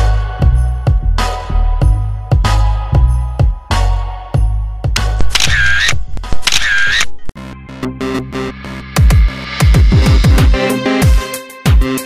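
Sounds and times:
camera shutter sound effects: 5.0 - 7.3
electronic background music: 5.0 - 12.0.

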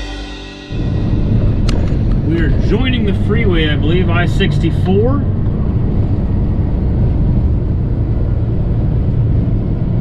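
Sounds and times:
background music with drums: 0.0 - 2.2
truck engine drone: 0.0 - 10.0
road noise inside cab: 0.7 - 10.0.

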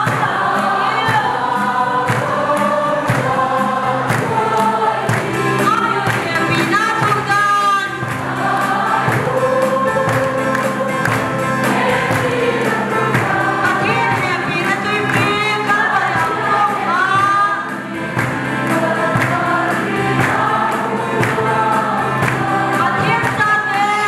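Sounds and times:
women's choir singing gospel: 0.0 - 24.0.

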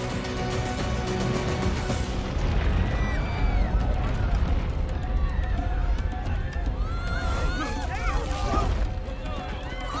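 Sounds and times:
dense low rumble: 1.9 - 7.4.

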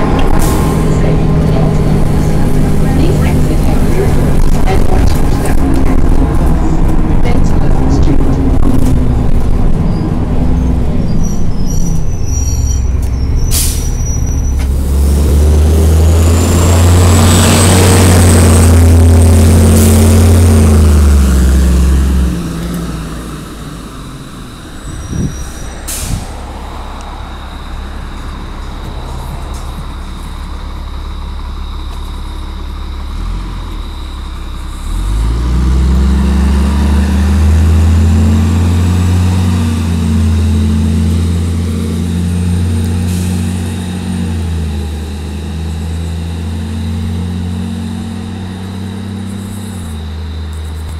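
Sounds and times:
high whine rising: 0.0 - 30.7
bus diesel engine pulling hard: 0.0 - 50.9.

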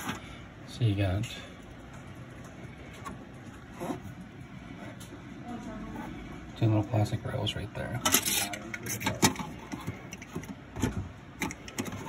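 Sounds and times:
plastic parts clicking and scraping: 8.0 - 12.0.

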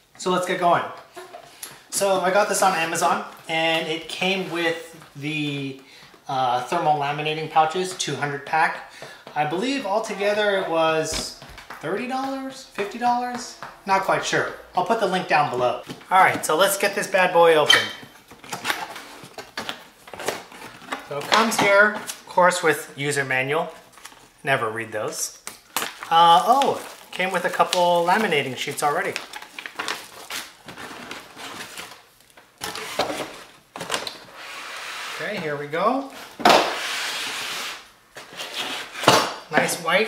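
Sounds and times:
plastic wrap and cardboard rustling: 0.2 - 13.6, 14.8 - 40.0.

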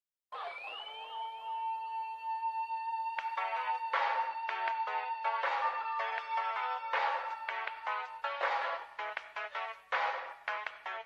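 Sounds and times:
synthesizer held tone: 0.3 - 7.4.

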